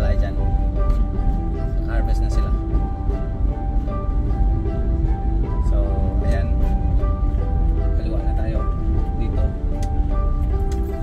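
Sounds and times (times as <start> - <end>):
background music with held notes: 0.0 - 11.0
car driving rumble: 0.0 - 11.0.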